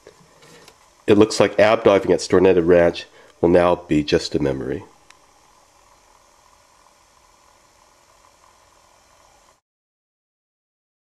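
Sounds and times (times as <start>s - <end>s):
faint room noise hiss: 0.0s - 9.6s.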